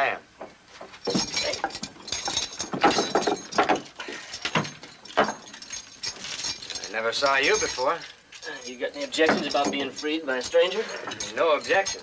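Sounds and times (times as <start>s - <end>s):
metal shackles clicking and rattling: 0.8s - 12.0s.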